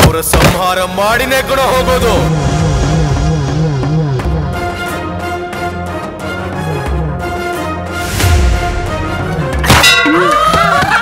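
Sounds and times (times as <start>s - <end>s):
background film score: 0.0s - 11.0s.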